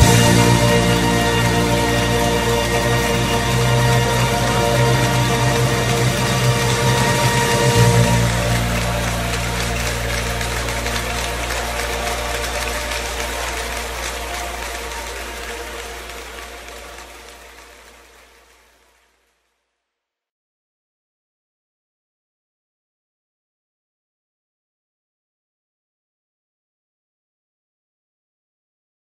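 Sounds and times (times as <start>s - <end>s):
worship band sustained chord: 0.0s - 18.5s.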